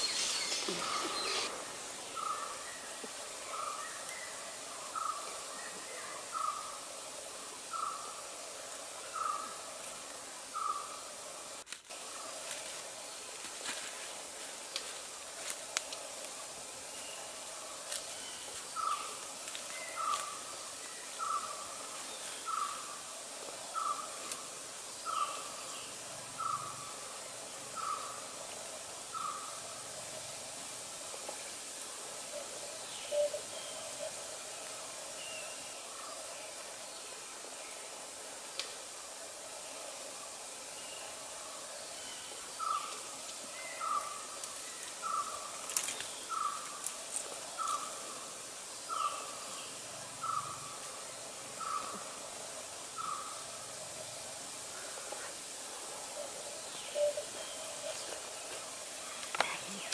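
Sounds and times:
high hiss: 0:00.0 - 0:59.9.

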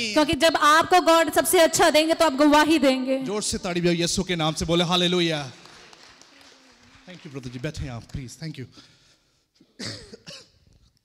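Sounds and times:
person coughing: 0:09.6 - 0:10.7.

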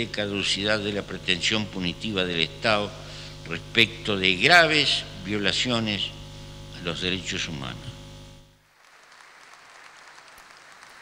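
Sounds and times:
audience applauding: 0:08.7 - 0:11.0.

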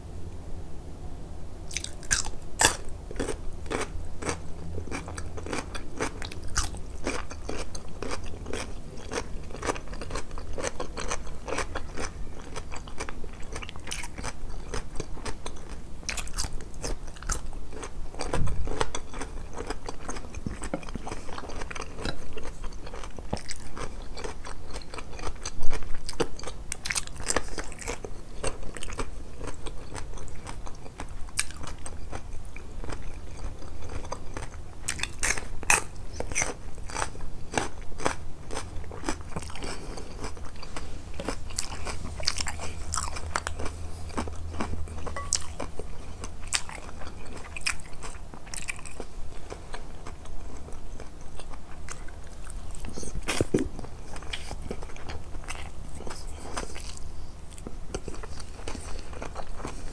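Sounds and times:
crunchy chewing: 0:01.7 - 0:59.9.

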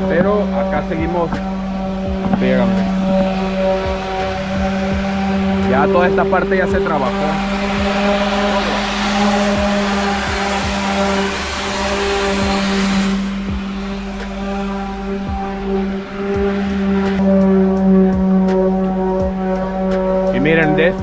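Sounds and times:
orbital sander motor hum: 0:00.0 - 0:21.0
sanding pad scratching paint: 0:00.0 - 0:21.0.

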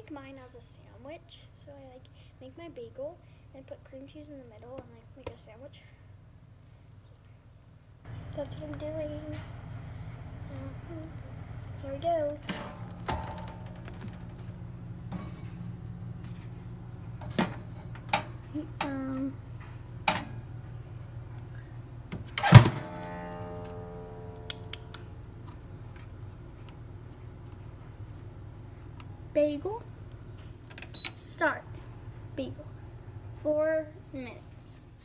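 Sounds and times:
steady low hum: 0:00.0 - 0:35.0
toaster oven door clanging shut: 0:12.4 - 0:14.3, 0:22.4 - 0:23.9.

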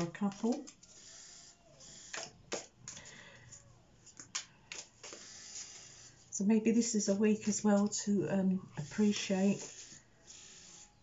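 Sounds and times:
cards shuffling rustle: 0:02.5 - 0:06.1.

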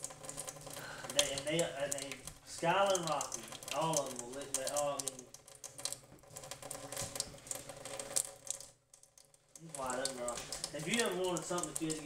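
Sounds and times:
tap water trickling into metal sink: 0:00.0 - 0:12.0.

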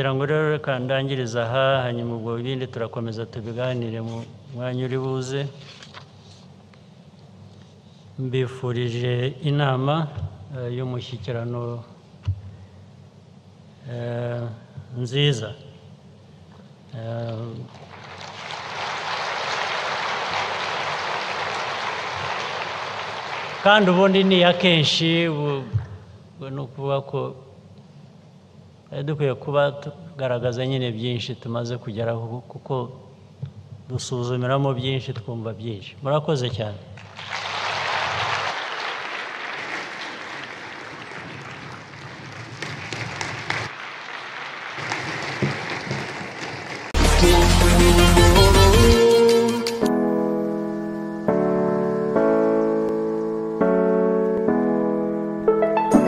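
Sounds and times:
large audience applauding: 0:17.7 - 0:24.4, 0:37.0 - 0:47.7
loud music: 0:47.0 - 0:52.4, 0:53.6 - 0:56.0.

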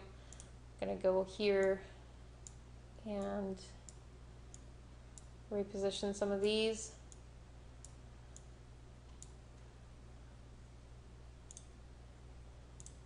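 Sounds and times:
computer mouse clicks: 0:00.3 - 0:00.5, 0:09.1 - 0:09.4, 0:11.5 - 0:11.8, 0:12.8 - 0:13.0.

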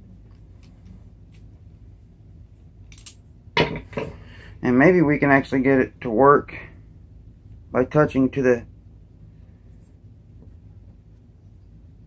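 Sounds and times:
small metal clicks and clinks: 0:02.9 - 0:03.2.

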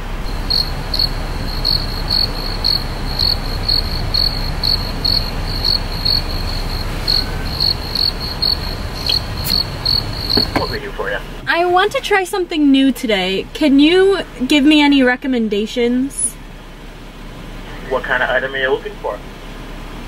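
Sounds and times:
steady low rumble: 0:00.0 - 0:20.0
cricket chirping: 0:00.1 - 0:10.9.

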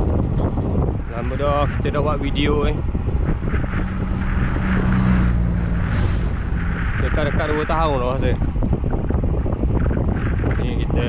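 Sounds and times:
steady low hum: 0:00.0 - 0:11.0
wind rushing over microphone: 0:00.0 - 0:11.0.

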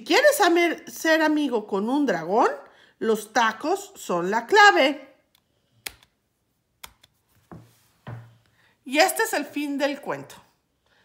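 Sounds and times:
soft dull bump: 0:07.5 - 0:08.4.

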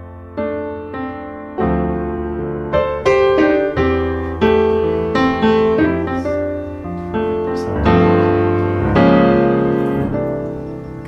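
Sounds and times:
slow piano music: 0:00.0 - 0:11.0.

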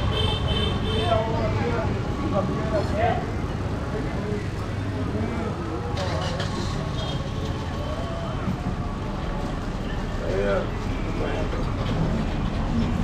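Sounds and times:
low traffic rumble: 0:00.0 - 0:13.0
people talking: 0:00.8 - 0:12.7.

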